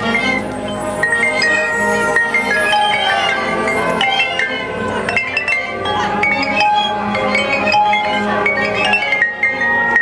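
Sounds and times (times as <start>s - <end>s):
mallet percussion ringing notes: 0.0s - 10.0s
marching band playing: 0.0s - 10.0s.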